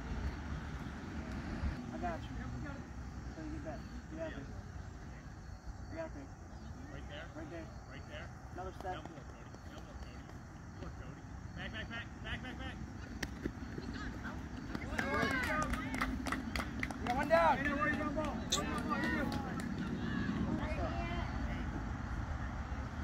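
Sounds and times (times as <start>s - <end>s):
players and spectators calling out: 11.5s - 16.2s, 17.0s - 23.0s.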